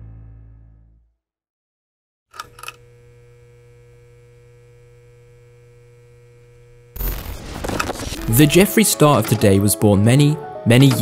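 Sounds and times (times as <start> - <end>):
steady electrical hum: 2.5 - 7.8
electric crackles: 7.0 - 8.7.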